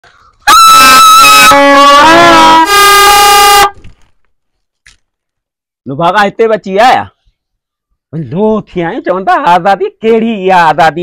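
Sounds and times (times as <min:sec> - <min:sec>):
toy trumpets blaring: 0:00.5 - 0:03.8.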